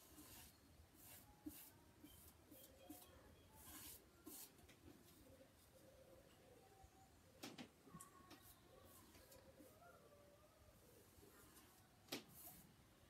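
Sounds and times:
paintbrush swishes: 0:00.0 - 0:04.6, 0:11.3 - 0:12.7.

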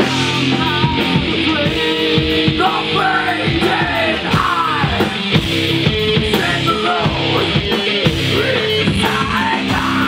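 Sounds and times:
man singing: 0:00.0 - 0:05.4, 0:06.1 - 0:10.0
bass guitar: 0:00.0 - 0:10.0
drums: 0:00.0 - 0:10.0
electric guitars: 0:00.0 - 0:10.0.

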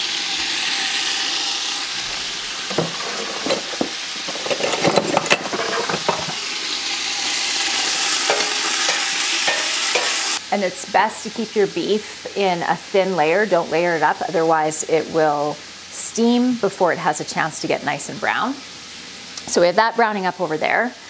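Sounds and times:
meat sizzling in hot oil: 0:00.0 - 0:20.5
utensil scraping pot: 0:02.0 - 0:06.7, 0:07.6 - 0:10.4.

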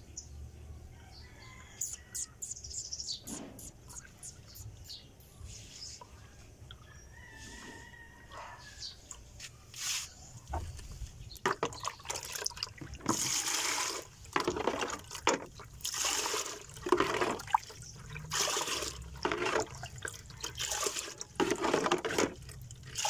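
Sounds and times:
water splashing from dipper: 0:11.4 - 0:23.0.

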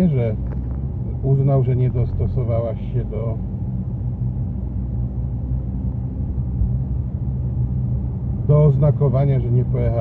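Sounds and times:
car engine and road noise: 0:00.0 - 0:10.0.

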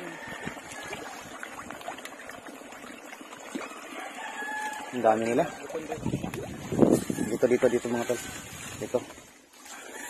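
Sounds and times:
rooster crowing: 0:00.0 - 0:00.9, 0:04.0 - 0:05.6, 0:07.1 - 0:08.5.

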